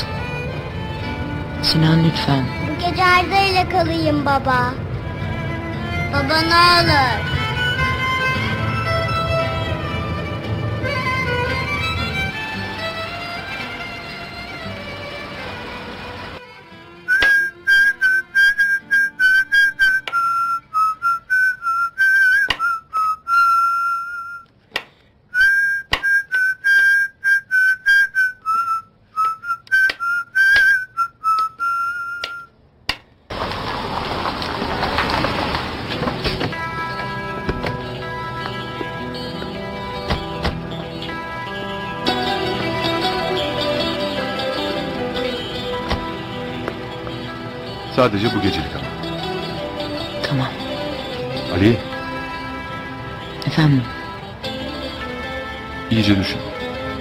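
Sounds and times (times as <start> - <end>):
soft string music: 0.0 - 23.1, 35.8 - 57.0
man whistling a tune: 17.1 - 24.5, 25.3 - 32.5.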